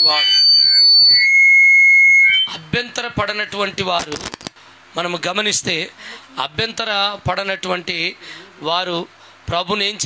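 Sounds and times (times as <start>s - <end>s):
microphone feedback squeal: 0.0s - 2.6s.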